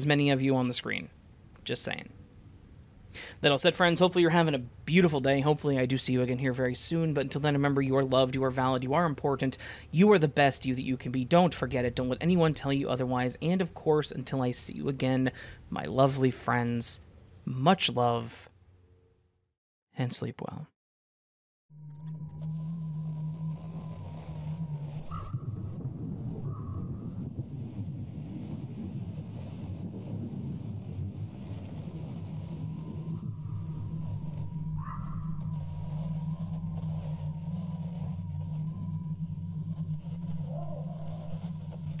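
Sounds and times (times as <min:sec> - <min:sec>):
low rumbling drone: 0:00.0 - 0:17.4, 0:21.7 - 0:42.0
thin steady high tone: 0:32.9 - 0:42.0.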